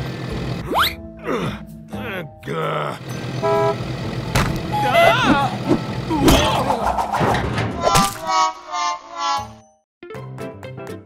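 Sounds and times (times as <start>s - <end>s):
background music: 0.6s - 11.0s
horn-like toot: 3.4s - 3.8s, 4.6s - 5.6s.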